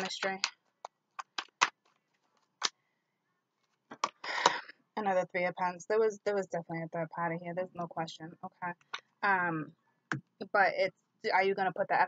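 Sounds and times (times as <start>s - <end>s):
tarot cards shuffling snap: 0.0s - 2.8s.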